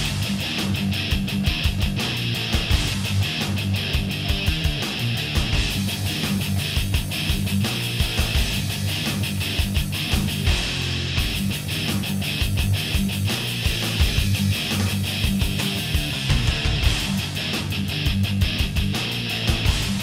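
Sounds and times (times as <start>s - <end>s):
distorted electric guitar riffing: 0.0s - 20.0s
fast drumming: 0.0s - 20.0s.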